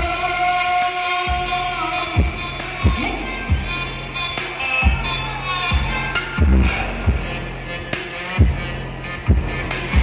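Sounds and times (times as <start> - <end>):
live pop music: 0.0 - 10.0.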